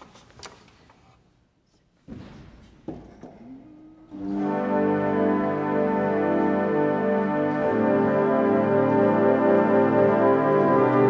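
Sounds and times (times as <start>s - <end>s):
pipe organ full chord: 4.1s - 11.0s.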